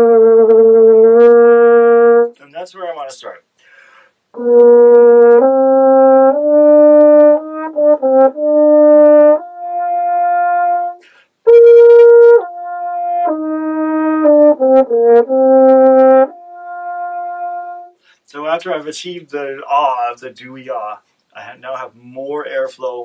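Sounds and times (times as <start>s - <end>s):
french horn playing: 0.0s - 2.4s, 4.3s - 18.0s.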